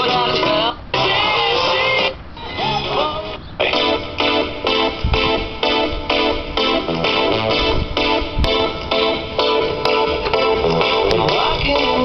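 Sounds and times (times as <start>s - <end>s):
person singing: 0.0s - 4.4s, 10.3s - 12.0s
guitar: 0.0s - 12.0s
short repeated chords: 3.7s - 11.6s.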